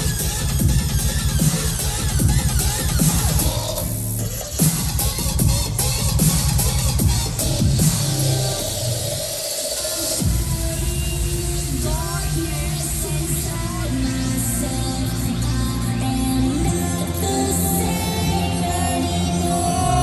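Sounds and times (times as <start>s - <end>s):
loud dubstep with heavy bass: 0.0s - 17.9s.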